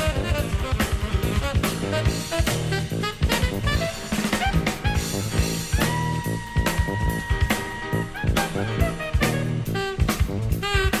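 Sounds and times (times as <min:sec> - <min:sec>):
bass line: 0:00.0 - 0:11.0
drum kit steady beat: 0:00.0 - 0:11.0
jazz music: 0:00.0 - 0:11.0.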